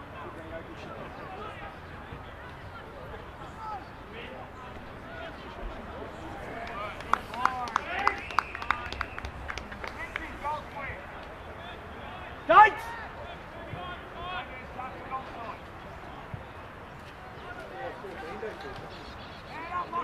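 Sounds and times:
sharp claps: 6.5s - 10.4s
people shouting short calls: 12.2s - 14.8s.

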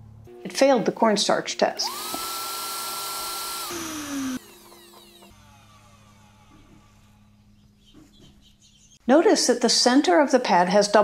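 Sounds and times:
vacuum cleaner whining: 1.8s - 6.2s.

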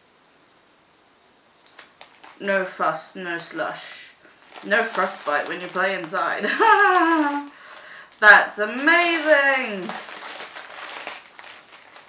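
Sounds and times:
plastic packaging crinkling: 1.6s - 12.0s.

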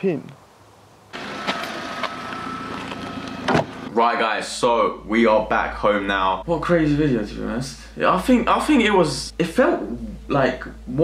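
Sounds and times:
car engine running: 1.2s - 4.0s.

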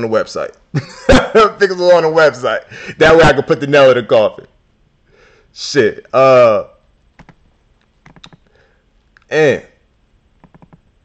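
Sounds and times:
keyboard keys clicking: 7.2s - 7.4s, 8.0s - 8.5s, 10.4s - 10.8s.

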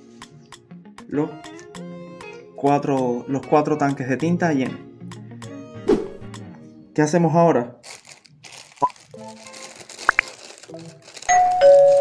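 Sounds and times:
soft background music: 0.0s - 12.0s
plastic packaging crinkling: 7.8s - 12.0s.

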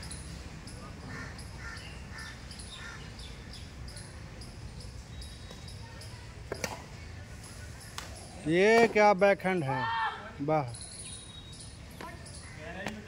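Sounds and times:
birds chirping: 0.0s - 8.7s, 10.4s - 13.0s.

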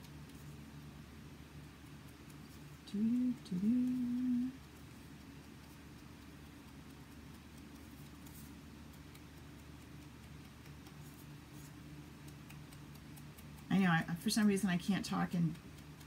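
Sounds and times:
steady low hum: 0.0s - 16.0s
sponge dauber tapping paper: 4.9s - 16.0s.

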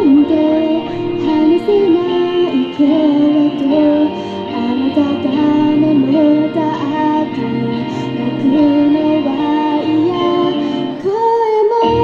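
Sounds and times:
girl singing through a microphone: 0.0s - 12.0s
instrumental accompaniment: 0.0s - 12.0s.

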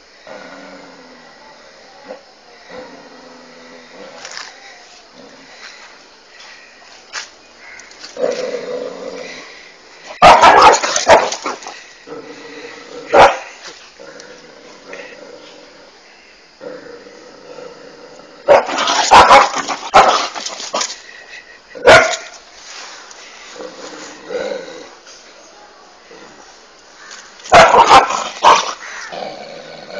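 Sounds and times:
dog barking: 10.2s - 11.4s, 13.1s - 13.5s, 18.5s - 20.3s, 21.8s - 22.3s, 27.5s - 28.7s.

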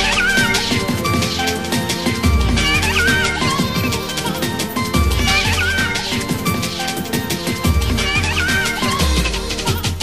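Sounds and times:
rave music with heavy bass: 0.0s - 10.0s.

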